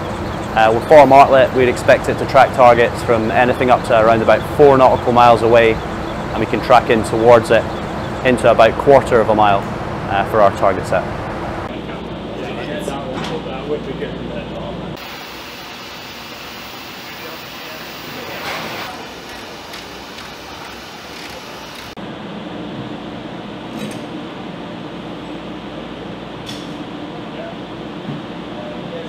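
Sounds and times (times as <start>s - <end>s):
indistinct voices: 0.0s - 11.1s
background hum and hiss: 0.0s - 29.0s.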